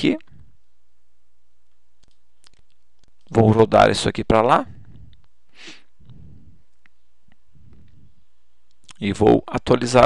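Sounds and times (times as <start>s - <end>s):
person speaking: 0.0s - 0.4s, 2.1s - 5.3s
steady low hum: 0.0s - 10.0s.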